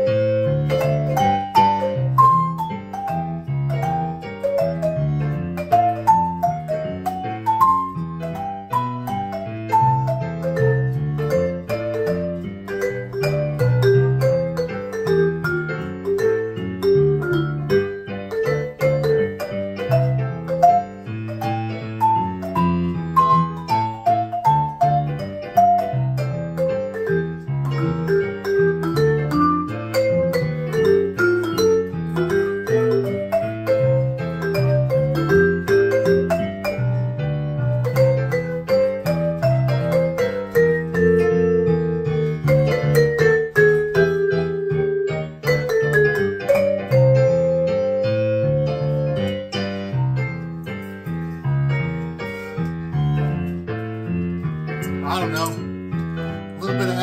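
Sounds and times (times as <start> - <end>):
piano loop: 0.0 - 57.0
vibraphone jazz melody: 0.0 - 57.0.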